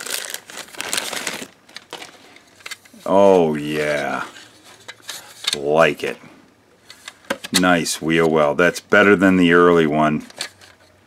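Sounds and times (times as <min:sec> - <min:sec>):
plastic bag crinkling: 0:00.0 - 0:05.7.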